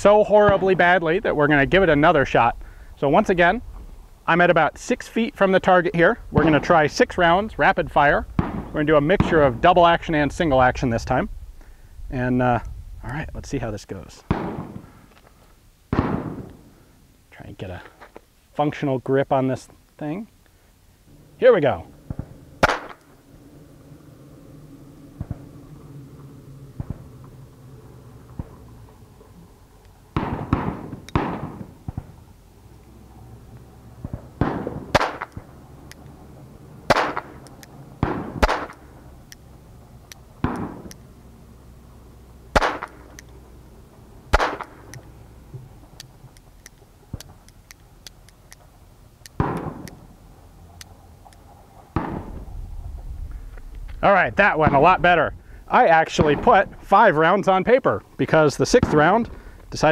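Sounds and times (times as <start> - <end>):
revolver shots: 8.3 - 9.4, 14.3 - 14.9, 15.9 - 16.7, 21.9 - 23.2, 30.1 - 32.2, 34.0 - 35.5, 36.9 - 38.9, 40.4 - 41.0, 42.5 - 43.2, 44.3 - 45.0, 49.3 - 50.0, 51.9 - 52.4.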